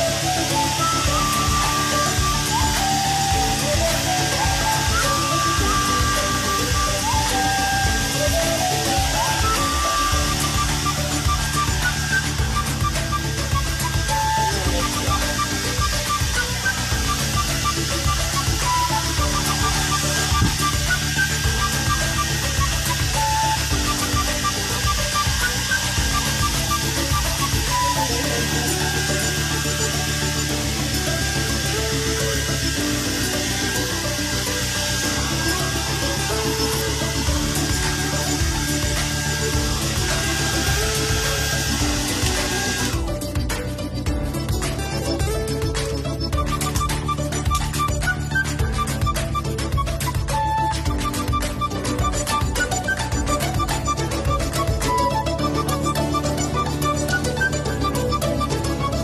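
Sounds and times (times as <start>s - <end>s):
hair dryer running: 0.0s - 58.1s
background music: 0.0s - 59.0s.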